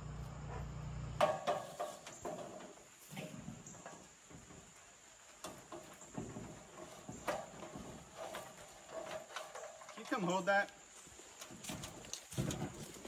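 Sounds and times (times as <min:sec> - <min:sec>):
knocks and creaks of climbing: 0:00.0 - 0:13.0.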